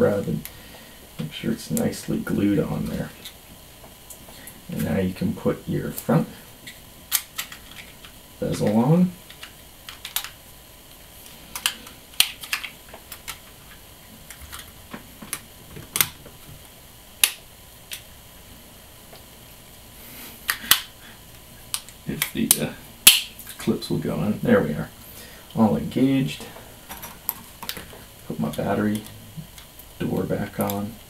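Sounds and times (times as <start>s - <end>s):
handling noise: 11.1s - 16.8s.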